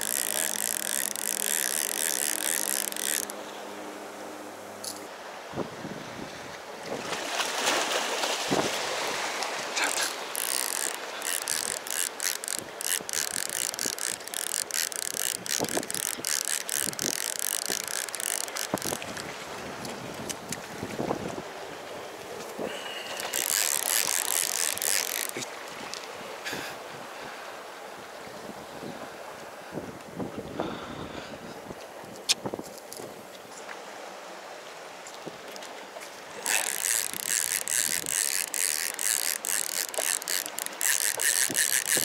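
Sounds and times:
fishing reel clicking: 0.0 - 3.4, 9.6 - 20.5, 23.0 - 26.1, 36.4 - 42.0.

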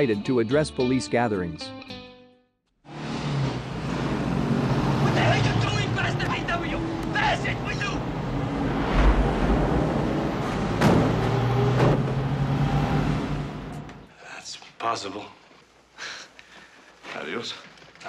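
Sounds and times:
bus engine running: 2.9 - 14.1
high voices: 4.9 - 8.4
sharp knocks: 10.7 - 12.3.

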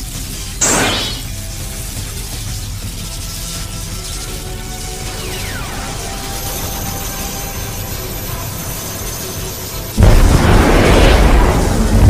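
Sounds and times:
rushing energy charging roar: 0.6 - 1.3, 4.8 - 12.0
faint high whine: 5.0 - 11.7.

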